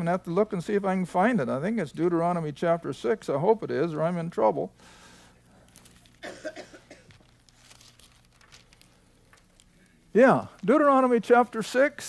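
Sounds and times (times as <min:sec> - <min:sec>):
rustling of thin pages: 0:05.6 - 0:06.2, 0:07.0 - 0:11.7
person clearing throat: 0:06.2 - 0:07.2.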